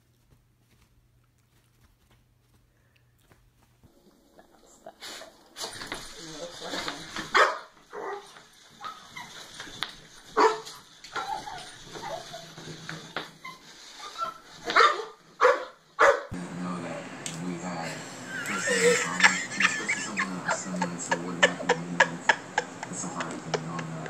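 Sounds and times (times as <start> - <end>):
small dog barking: 7.3 - 9.0, 10.4 - 12.2, 14.7 - 16.3.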